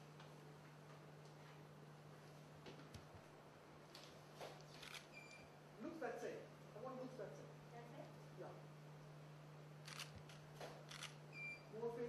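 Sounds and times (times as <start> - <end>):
low electrical hum: 0.0 - 12.0
camera shutter clicks: 4.8 - 5.1, 9.8 - 11.2.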